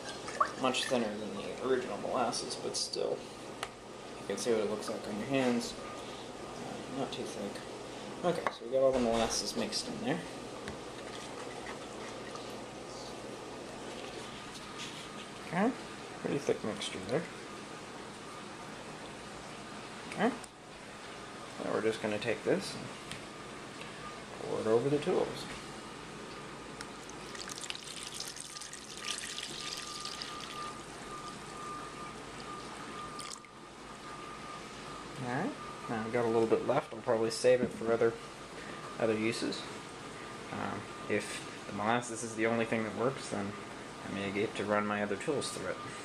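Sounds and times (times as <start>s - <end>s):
liquid splashing and trickling: 0.0s - 1.0s, 27.0s - 31.5s, 33.2s - 33.5s.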